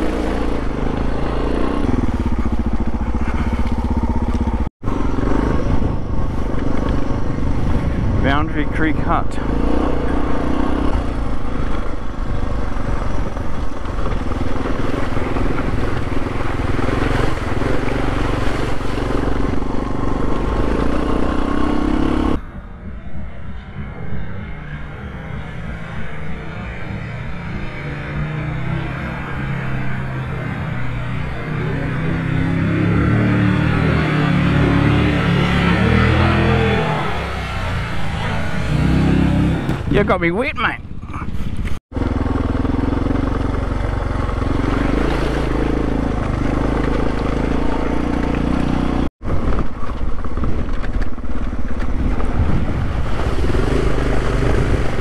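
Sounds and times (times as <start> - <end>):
motorcycle approaching through river: 0.0 - 22.4, 23.8 - 55.0
motorcycle engine running: 0.0 - 55.0
wind on microphone: 4.8 - 8.8, 49.2 - 55.0.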